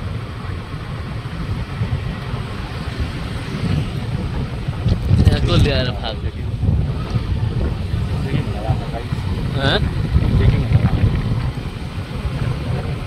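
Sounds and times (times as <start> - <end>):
motorcycle engine rumble: 0.0 - 13.0
wind rushing over microphone: 0.0 - 13.0.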